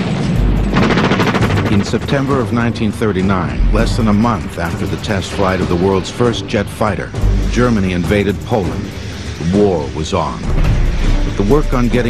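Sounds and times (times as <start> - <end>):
deep rumble: 0.0 - 12.0
machine-gun fire: 0.7 - 2.4.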